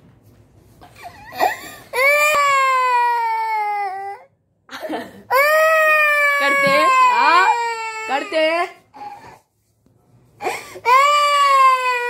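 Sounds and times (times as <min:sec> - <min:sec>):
toddler girl crying: 0:05.3 - 0:09.4, 0:10.4 - 0:12.0.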